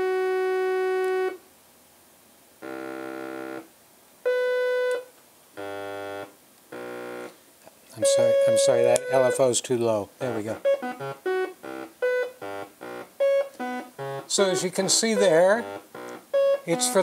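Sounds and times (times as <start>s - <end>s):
short synth notes: 8.0s - 9.5s, 10.2s - 17.0s
synthesizer tone: 8.0s - 9.5s, 10.2s - 17.0s.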